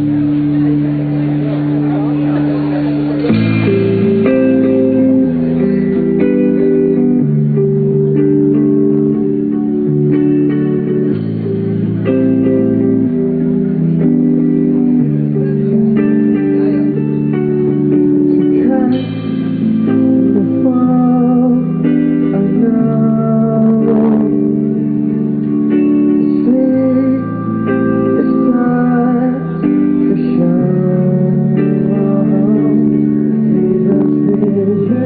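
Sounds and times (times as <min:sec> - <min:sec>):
pop-rock band playing: 0:00.0 - 0:35.0
man singing: 0:18.3 - 0:24.9, 0:26.2 - 0:35.0.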